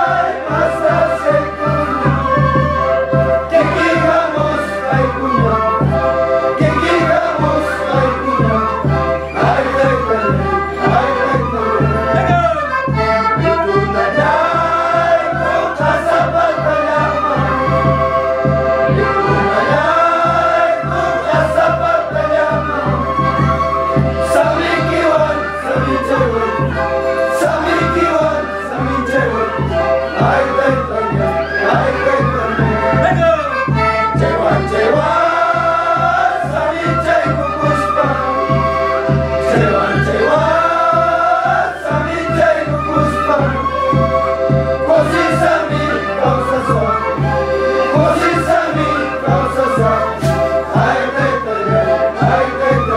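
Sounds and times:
group singing in unison: 0:00.0 - 0:52.9.

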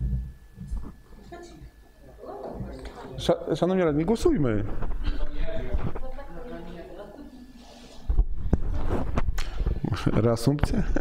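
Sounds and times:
microphone handling thumps and clicks: 0:08.1 - 0:10.8.

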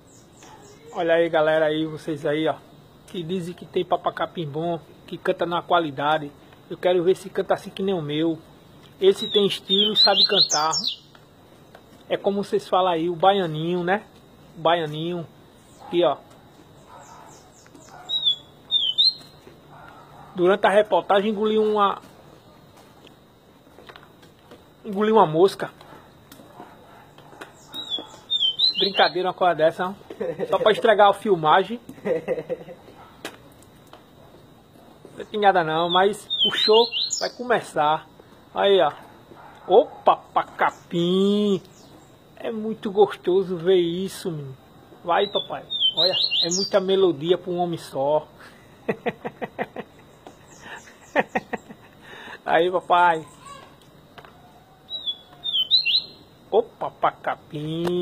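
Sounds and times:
bird singing whistled notes: 0:09.1 - 0:11.1, 0:16.8 - 0:19.4, 0:27.6 - 0:29.3, 0:35.7 - 0:37.5, 0:45.2 - 0:46.9, 0:54.8 - 0:56.3.

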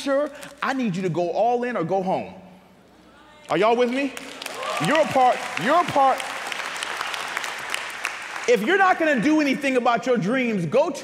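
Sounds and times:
audience applauding: 0:03.8 - 0:09.5.

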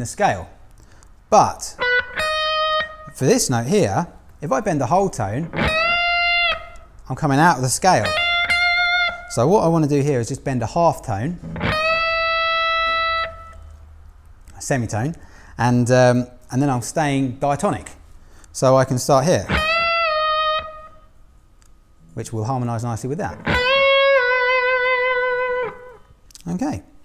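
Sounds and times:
electric guitar note bent: 0:05.4 - 0:06.9, 0:11.4 - 0:13.6, 0:19.5 - 0:21.0, 0:23.3 - 0:26.1.

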